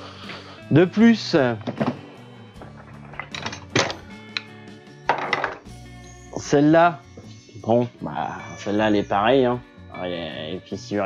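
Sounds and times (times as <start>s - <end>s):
background music: 0.0s - 11.0s
metallic clanks of tools: 2.6s - 4.5s.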